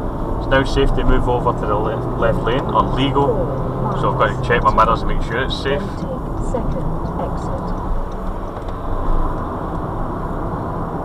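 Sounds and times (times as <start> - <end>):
car engine drone: 0.0 - 11.0
tyres droning on tarmac: 0.0 - 11.0.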